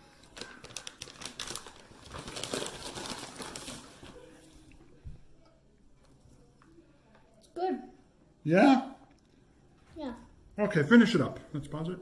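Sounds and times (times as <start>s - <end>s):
plastic packaging crinkling: 0.2s - 4.2s.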